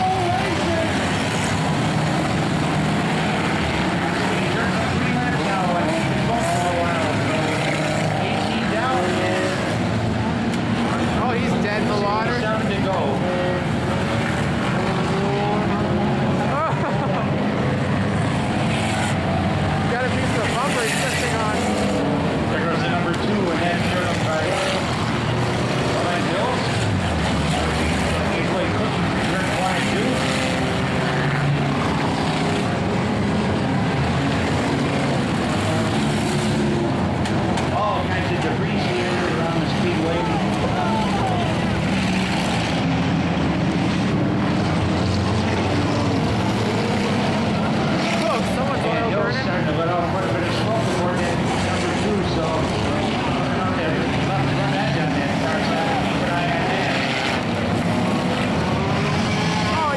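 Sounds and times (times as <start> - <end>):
race car engines: 0.0 - 59.9.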